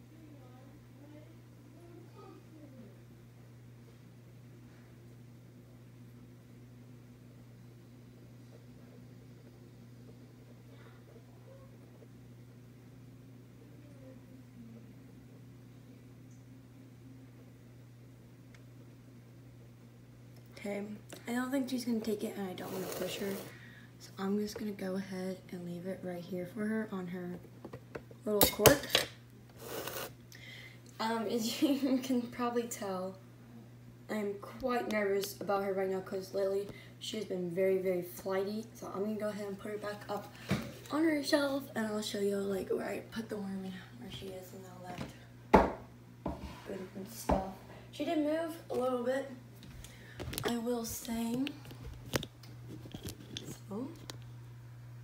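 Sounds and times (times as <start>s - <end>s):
rubbing and rustling handling noise: 50.1s - 53.9s.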